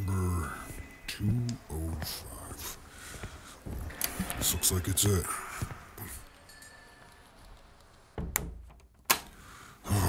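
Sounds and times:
door opening thud: 0:08.1 - 0:09.3
door latch click: 0:08.2 - 0:09.4.

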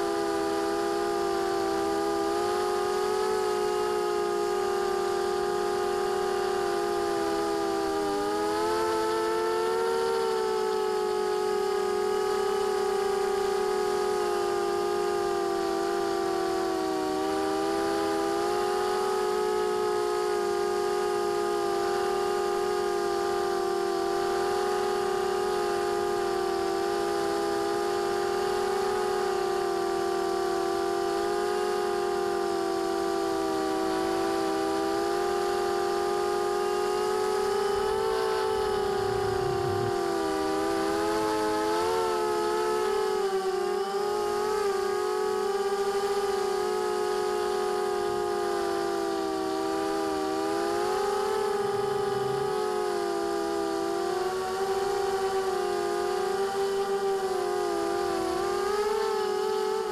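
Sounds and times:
drone propellers whining: 0:36.0 - 0:43.0, 0:48.4 - 0:56.5.

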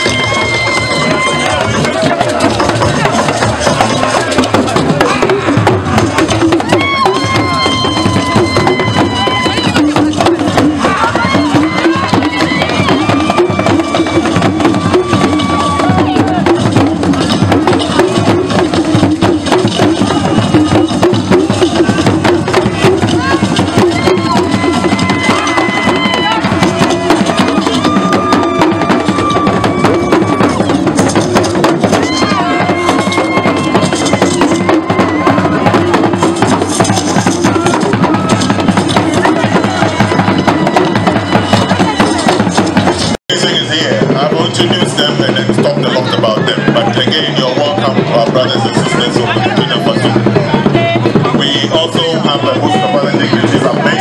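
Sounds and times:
hand drums and percussion: 0:00.0 - 0:54.0.

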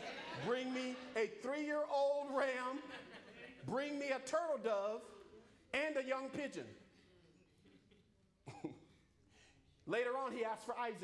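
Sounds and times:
person coughing: 0:08.4 - 0:09.2.

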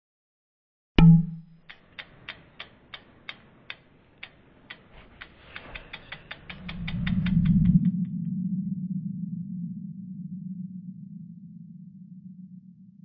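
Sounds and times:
clock-like ticks: 0:01.0 - 0:08.1
low whoosh: 0:06.5 - 0:12.7.

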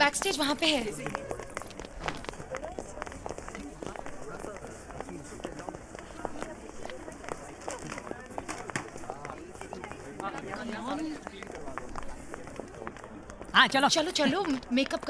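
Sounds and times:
faint voices talking: 0:00.0 - 0:15.0.

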